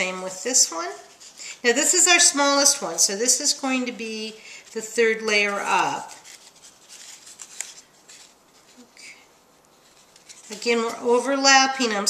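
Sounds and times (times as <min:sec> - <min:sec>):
paper rustling and rubbing: 0:00.0 - 0:12.0.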